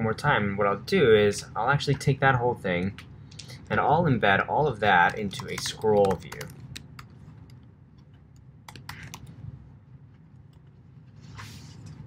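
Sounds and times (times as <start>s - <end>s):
keyboard typing: 5.0s - 7.7s, 8.4s - 9.4s.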